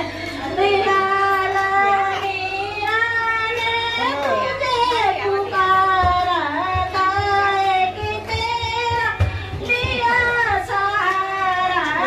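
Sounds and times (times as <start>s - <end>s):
woman singing devotional song: 0.0s - 12.0s.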